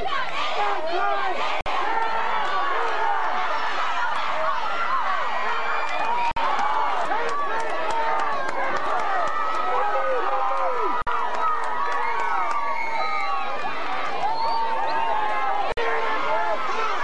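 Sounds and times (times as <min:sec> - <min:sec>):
crowd shouting and talking: 0:00.0 - 0:17.0.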